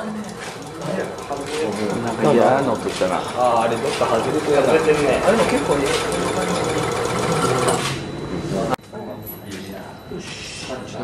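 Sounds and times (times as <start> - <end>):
shaking table rattling: 0.0 - 7.8.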